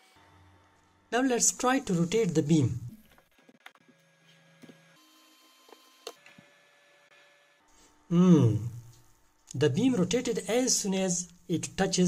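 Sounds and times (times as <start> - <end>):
faint electrical hum: 0.1 - 12.0.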